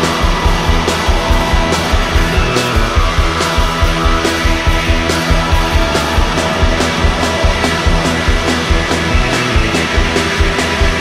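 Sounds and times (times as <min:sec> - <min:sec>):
rock music with guitar and drums: 0:00.0 - 0:11.0.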